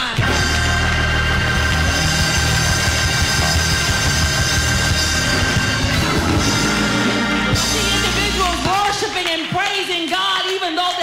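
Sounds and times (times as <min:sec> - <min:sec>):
steady bass line: 0:00.0 - 0:09.3
drums striking: 0:00.0 - 0:09.4
held chords: 0:00.2 - 0:09.2.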